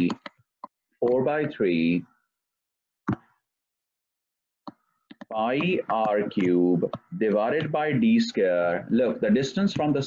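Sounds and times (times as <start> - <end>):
person speaking: 5.1 - 10.0.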